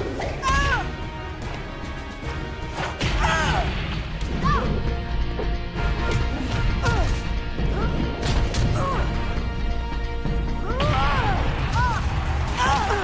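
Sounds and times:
dramatic orchestral music: 0.0 - 13.0.

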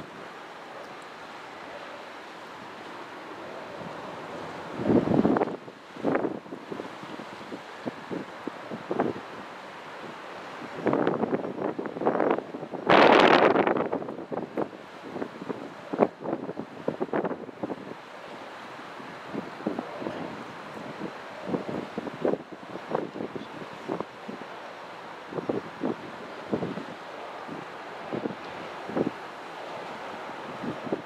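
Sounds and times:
steady background hiss: 0.0 - 31.0
wind buffeting microphone: 3.4 - 18.0, 19.0 - 31.0.

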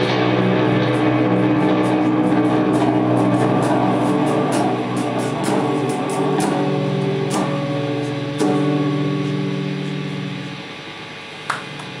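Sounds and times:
electric guitars sustained chord: 0.0 - 12.0.

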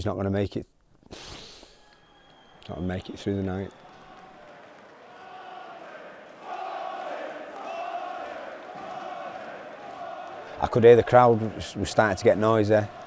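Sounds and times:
crowd chanting and shouting: 3.6 - 13.0.

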